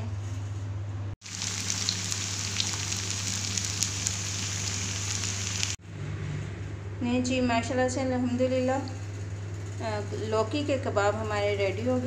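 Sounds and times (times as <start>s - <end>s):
food deep-frying in oil: 1.2s - 5.8s.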